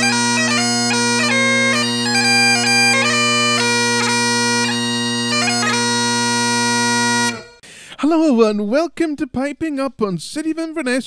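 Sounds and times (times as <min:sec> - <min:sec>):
bagpipes held note with drones: 0:00.0 - 0:07.6.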